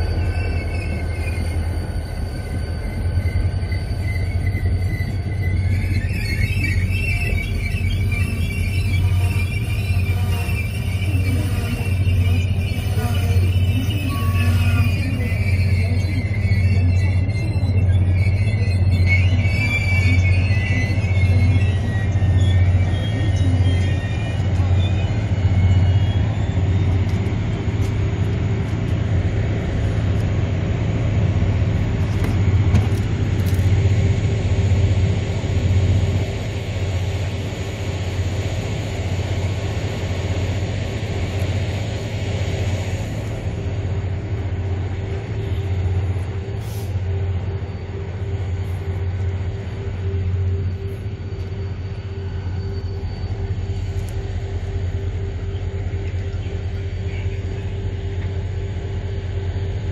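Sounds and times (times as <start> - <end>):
train engine humming: 0.0 - 59.9.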